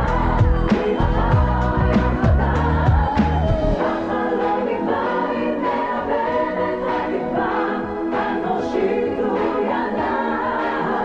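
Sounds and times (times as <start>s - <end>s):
crowd singing together: 0.0s - 11.0s.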